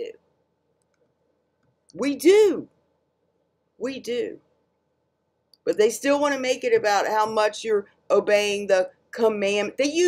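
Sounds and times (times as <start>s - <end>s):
woman speaking: 0.0s - 0.2s, 1.9s - 2.7s, 3.8s - 4.5s, 5.6s - 10.0s.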